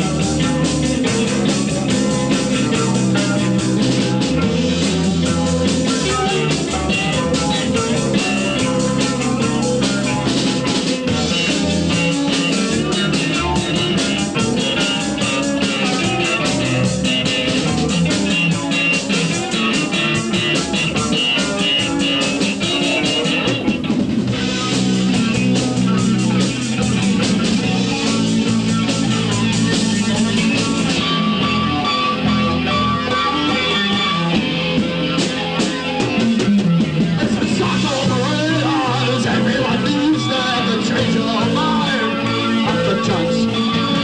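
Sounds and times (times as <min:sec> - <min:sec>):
fast steady drumming: 0:00.0 - 0:31.9, 0:33.3 - 0:44.0
live rock band playing: 0:00.0 - 0:44.0.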